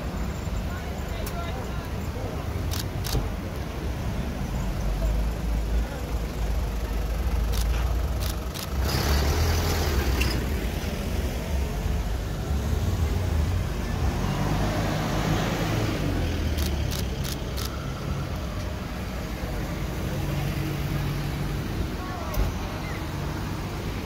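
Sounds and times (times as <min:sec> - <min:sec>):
vehicle engines passing: 0:00.0 - 0:24.0.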